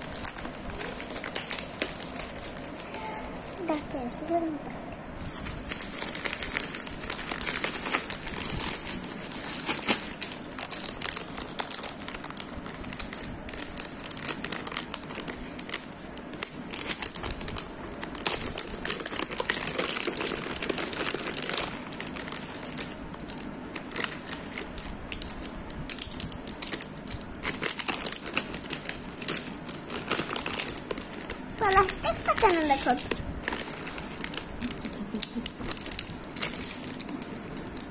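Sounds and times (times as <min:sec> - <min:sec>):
bubble wrap crinkling: 0:00.0 - 0:04.5, 0:05.2 - 0:37.9.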